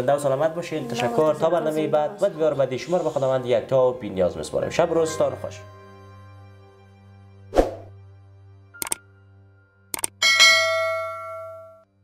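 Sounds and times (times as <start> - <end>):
notification bell chime: 10.2 - 11.8.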